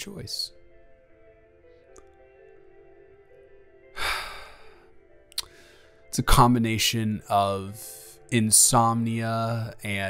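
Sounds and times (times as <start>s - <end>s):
soft background music: 0.0s - 10.0s
man sighing: 3.9s - 5.7s
brief breath: 4.0s - 6.0s.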